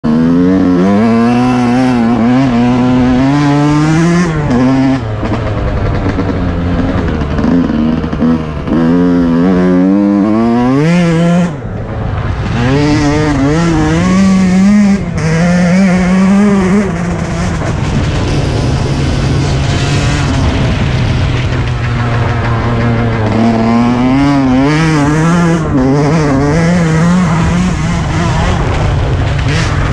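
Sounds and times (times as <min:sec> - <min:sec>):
dirt bike engine revving: 0:00.0 - 0:29.9.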